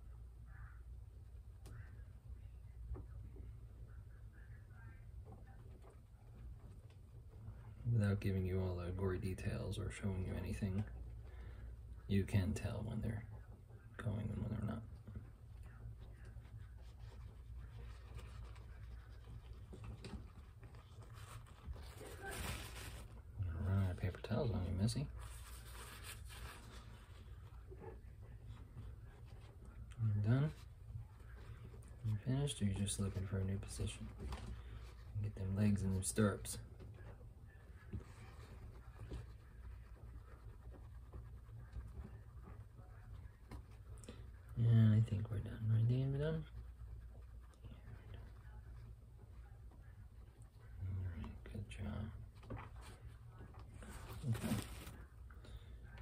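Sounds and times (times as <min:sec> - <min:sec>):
steady low hum: 0:00.0 - 0:56.0
man speaking: 0:07.8 - 0:11.0, 0:12.0 - 0:15.1, 0:23.3 - 0:25.3, 0:29.8 - 0:30.7, 0:32.0 - 0:34.4, 0:35.0 - 0:36.8, 0:44.5 - 0:46.6, 0:50.7 - 0:52.2, 0:53.8 - 0:55.0
paper towel rustling: 0:14.0 - 0:56.0.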